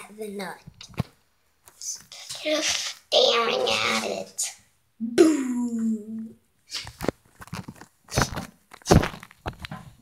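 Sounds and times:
camera handling knocks and rustles: 0:07.0 - 0:10.0.

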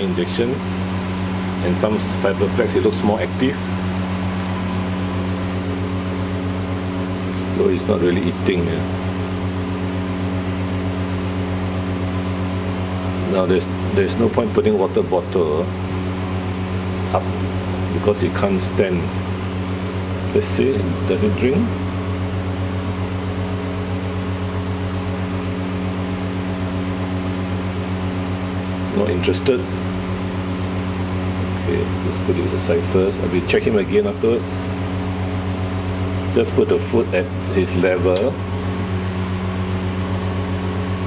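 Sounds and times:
machine humming: 0:00.0 - 0:41.0.

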